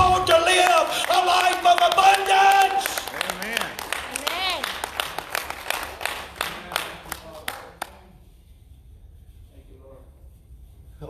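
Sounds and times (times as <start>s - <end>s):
hand clapping: 0.0s - 8.2s.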